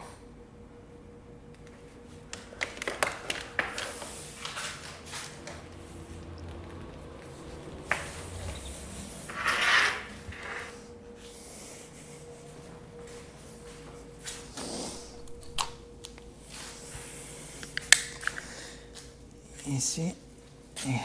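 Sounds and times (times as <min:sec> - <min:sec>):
faint steady hum: 0:00.0 - 0:21.0
scraping rustle: 0:07.2 - 0:10.8.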